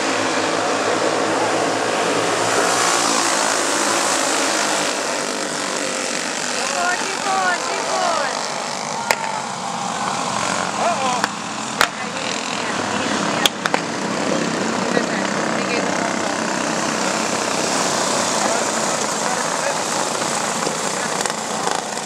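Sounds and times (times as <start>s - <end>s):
racing kart engines droning: 0.0s - 22.0s.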